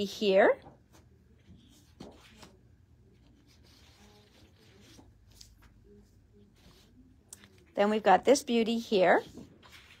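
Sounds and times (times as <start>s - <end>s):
paper sheets rustling: 0.8s - 7.6s, 9.1s - 10.0s
paper brushing: 3.2s - 7.1s, 9.1s - 10.0s.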